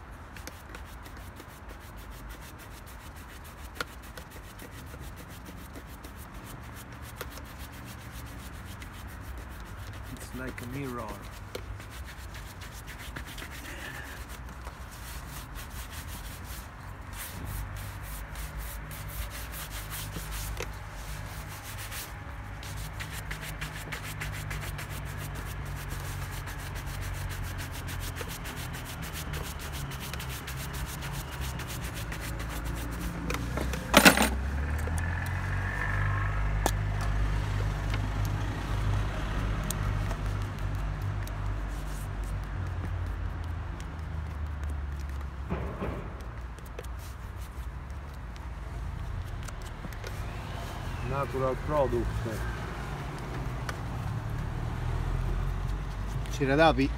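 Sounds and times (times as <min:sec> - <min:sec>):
shoe brush rubbing on leather: 0:00.0 - 0:56.9
sharp knock: 0:45.5 - 0:46.5.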